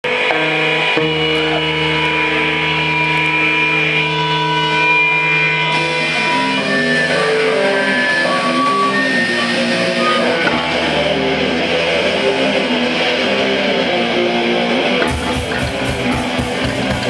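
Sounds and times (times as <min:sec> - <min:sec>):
live band playing: 0:00.0 - 0:14.1, 0:15.0 - 0:17.0
distorted electric guitar: 0:00.0 - 0:17.0.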